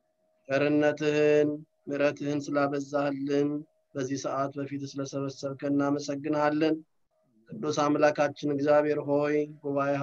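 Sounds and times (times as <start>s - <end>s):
man chanting: 7.4s - 10.0s.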